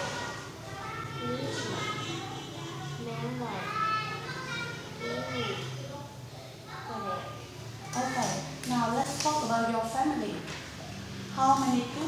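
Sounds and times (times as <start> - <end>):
child speaking: 0.0 - 8.6.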